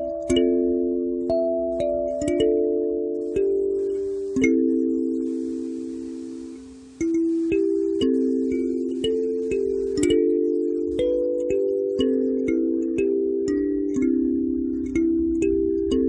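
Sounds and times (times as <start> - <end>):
kalimba melody: 0.0 - 16.0.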